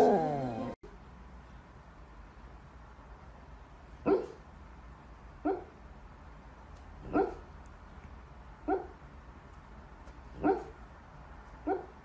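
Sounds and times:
dog barking: 4.0 - 4.4, 5.4 - 5.8, 7.0 - 7.5, 8.6 - 9.0, 10.4 - 10.8, 11.6 - 12.0.

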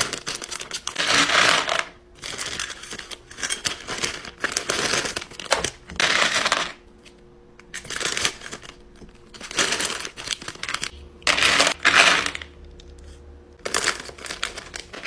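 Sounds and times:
plastic bag crinkling: 0.0 - 6.3, 7.8 - 12.5, 13.6 - 15.0.

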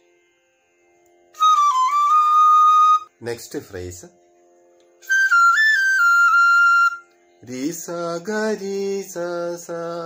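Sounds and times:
bamboo flute melody: 1.3 - 3.2, 5.0 - 7.2.

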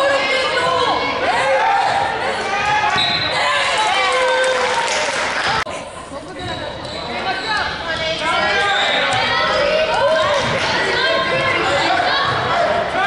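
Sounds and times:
voices shouting in echoing gym: 0.0 - 13.0.

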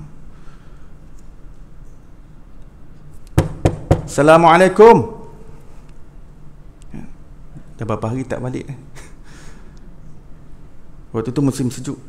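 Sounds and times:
loud knocks on hard surface: 3.4 - 4.2.

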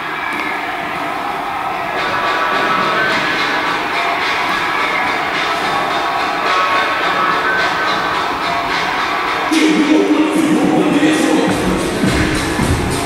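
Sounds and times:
echoing gym hall background noise: 0.0 - 13.0
faint musical tones: 0.0 - 13.0.

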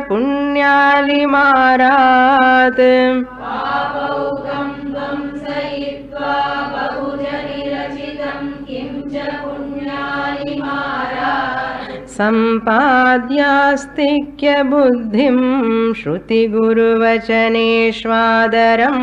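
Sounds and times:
woman chanting verse: 0.0 - 19.0
group chanting in unison: 3.3 - 12.3.

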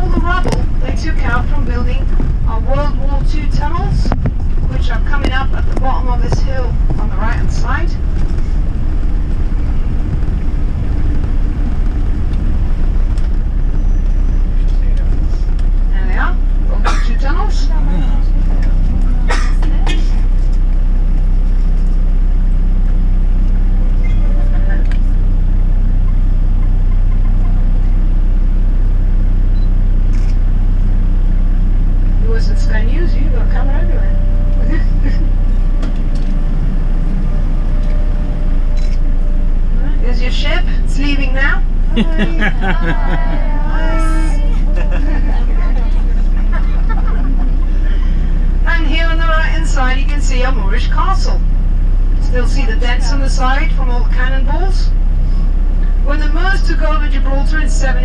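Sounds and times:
bus engine and road noise: 0.0 - 58.0.

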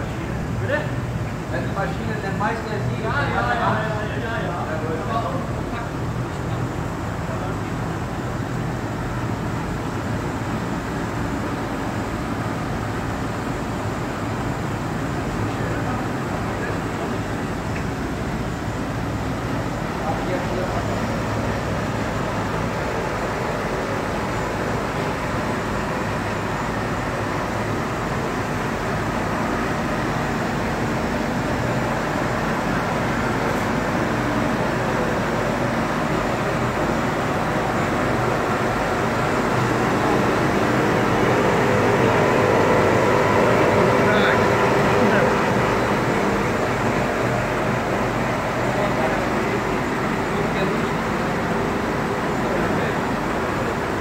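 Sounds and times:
printing press running: 0.0 - 54.0.

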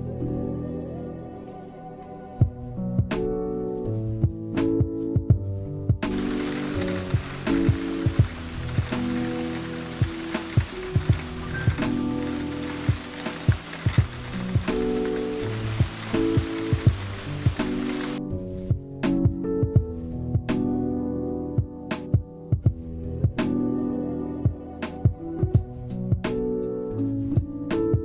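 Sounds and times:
background music with a beat: 2.0 - 28.0
steady rain falling: 6.1 - 18.2.

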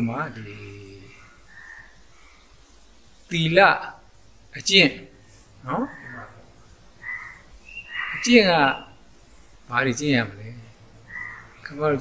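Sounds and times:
man speaking: 0.0 - 1.2, 3.3 - 6.5, 8.2 - 8.9, 11.7 - 12.0.

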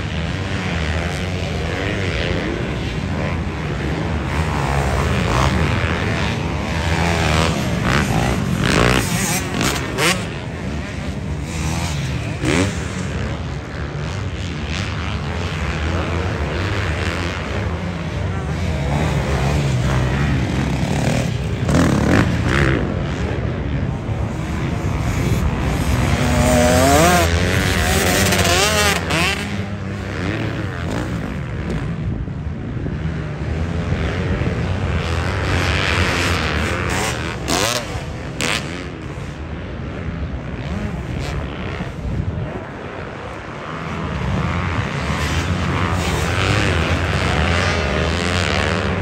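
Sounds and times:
distant dirt bike engines revving: 0.0 - 49.0.

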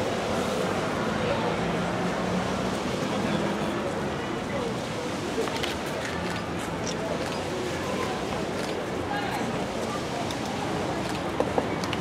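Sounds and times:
outdoor background noise: 0.0 - 12.0
people talking low: 2.9 - 12.0.

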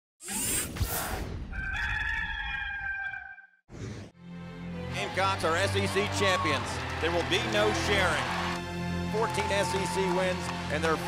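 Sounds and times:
rooster crowing: 1.5 - 3.4.

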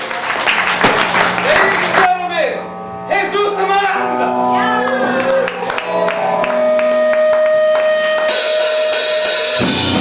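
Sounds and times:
held electric guitar note: 2.1 - 8.6
cymbals washing: 6.2 - 10.0.

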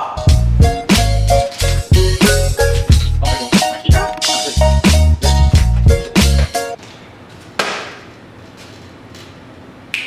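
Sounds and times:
bass-heavy hip-hop music: 0.0 - 6.8.

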